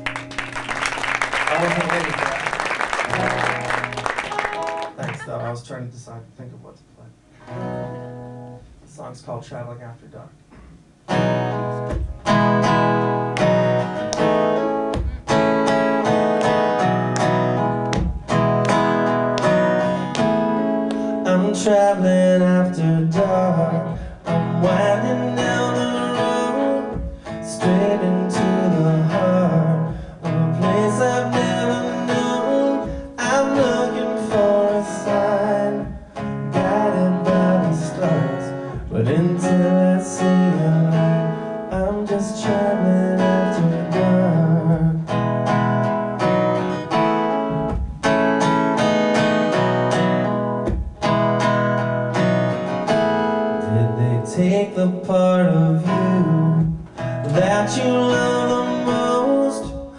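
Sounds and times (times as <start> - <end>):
acoustic guitar strumming chords: 0.0 - 5.8, 7.3 - 9.0, 10.5 - 59.9.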